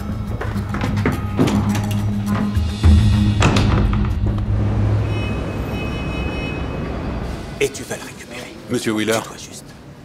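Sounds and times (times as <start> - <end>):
road traffic rumble: 2.1 - 10.0.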